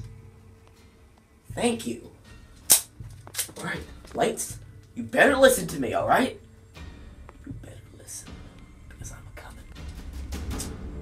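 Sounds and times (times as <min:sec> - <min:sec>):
sharp click: 0:02.6 - 0:03.6, 0:10.5 - 0:10.8.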